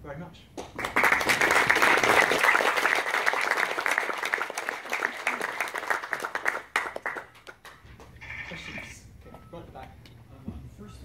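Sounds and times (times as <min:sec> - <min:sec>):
audience applauding: 0:00.6 - 0:07.9.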